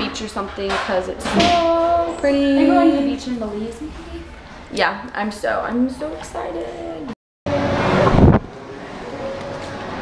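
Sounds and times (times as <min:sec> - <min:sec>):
rushing noise: 0:07.5 - 0:10.0.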